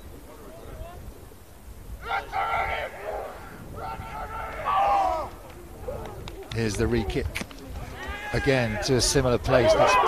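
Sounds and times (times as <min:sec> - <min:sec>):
wind rumble on microphone: 0:00.0 - 0:10.0
players yelling: 0:02.0 - 0:07.2, 0:07.8 - 0:10.0.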